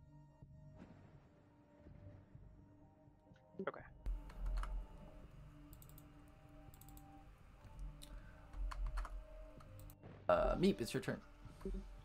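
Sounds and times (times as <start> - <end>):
keyboard and mouse clicks: 4.1 - 4.9, 5.6 - 10.0.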